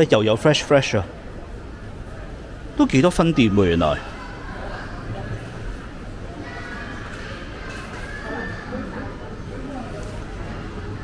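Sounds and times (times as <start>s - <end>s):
indistinct chatter of shoppers: 0.0s - 11.0s.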